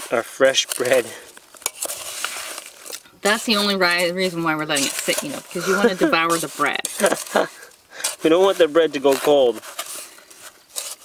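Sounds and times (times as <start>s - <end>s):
spoon scraping in metal pot: 0.6s - 11.0s.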